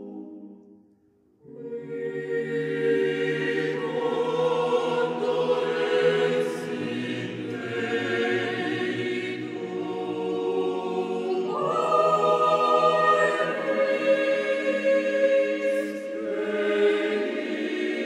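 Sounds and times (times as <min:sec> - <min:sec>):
choir singing a cappella: 0:00.0 - 0:00.8, 0:01.4 - 0:18.0.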